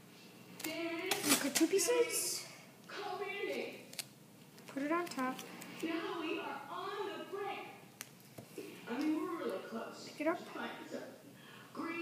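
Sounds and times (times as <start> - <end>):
person speaking: 0.6 - 4.0, 4.6 - 7.8.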